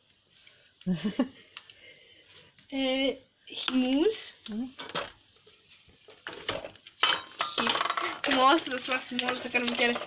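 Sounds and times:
plastic bottles and cartons clattering: 4.7 - 5.2, 6.0 - 10.0.

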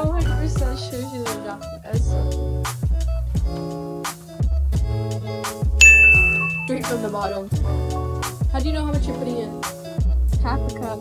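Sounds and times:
background music with beat: 2.6 - 7.0
bright high ding: 5.8 - 6.9.

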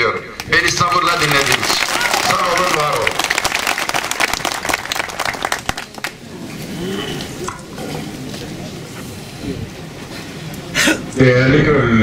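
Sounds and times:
audience applauding: 0.4 - 6.2
faint low voices: 5.6 - 12.0.

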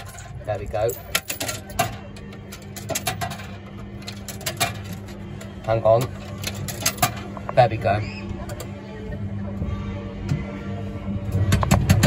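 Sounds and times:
coin mechanism clicks: 0.0 - 7.7
faint background music: 0.0 - 12.0
steady low hum: 0.0 - 12.0.

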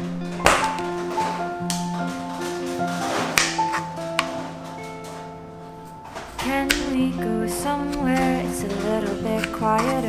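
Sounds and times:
soft melodic background music: 0.0 - 10.0.

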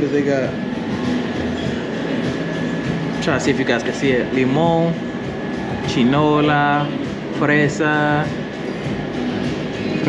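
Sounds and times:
cooling machinery hum: 0.0 - 10.0.

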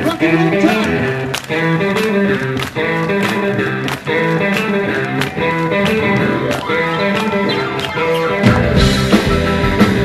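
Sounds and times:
electric guitars: 0.0 - 10.0.

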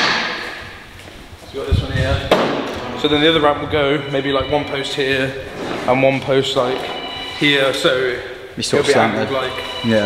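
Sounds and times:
sharp bang echoing: 0.0 - 0.8.

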